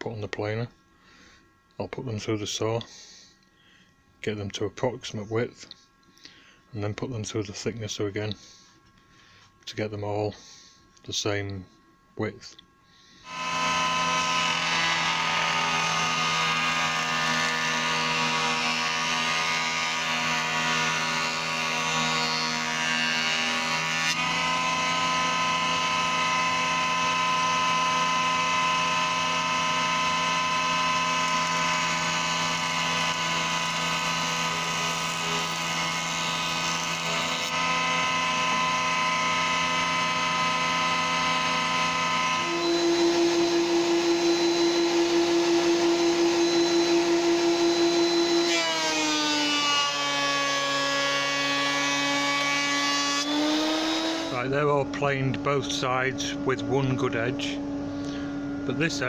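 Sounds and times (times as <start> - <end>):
electric planer whining: 13.2 - 56.5.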